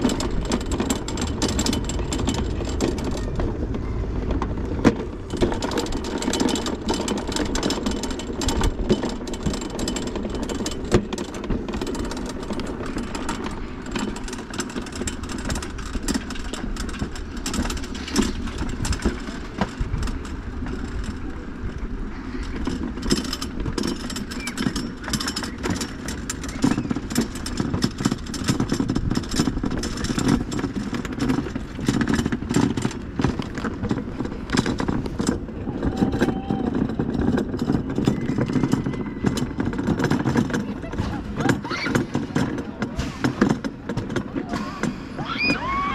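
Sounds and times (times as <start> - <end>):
bobsled rumbling in steel trough: 0.0 - 45.9.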